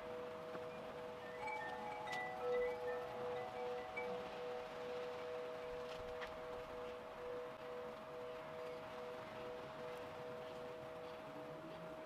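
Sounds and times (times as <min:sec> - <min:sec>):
wind chimes ringing: 0:00.0 - 0:12.0.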